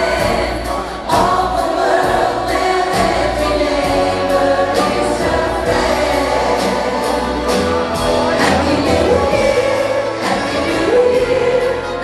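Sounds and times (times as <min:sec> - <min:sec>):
crowd singing in chorus: 0:00.0 - 0:12.0
live pop band and orchestra: 0:00.0 - 0:12.0.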